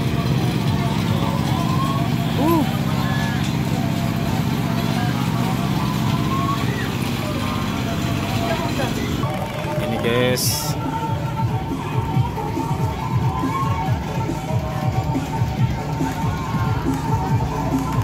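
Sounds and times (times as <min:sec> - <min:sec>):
low engine hum: 0:00.0 - 0:18.0
people's voices: 0:00.0 - 0:18.0.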